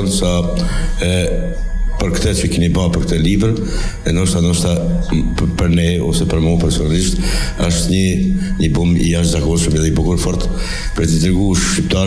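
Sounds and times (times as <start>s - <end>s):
man speaking into a microphone: 0.0s - 12.0s.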